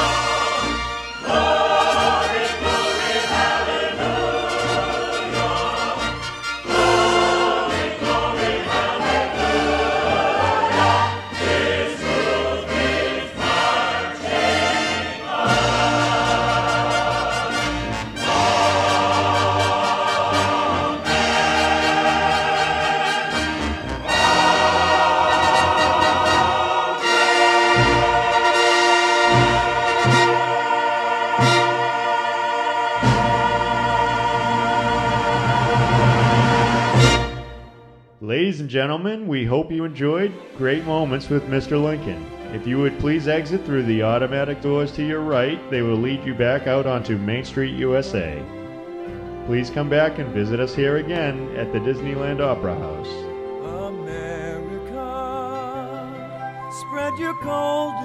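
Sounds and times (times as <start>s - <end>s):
choir singing held chords: 0.0s - 38.0s
orchestral accompaniment: 0.0s - 38.4s, 39.3s - 58.0s.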